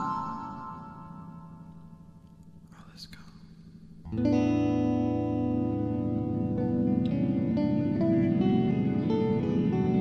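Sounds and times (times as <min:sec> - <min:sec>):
person whispering: 0:02.7 - 0:03.5.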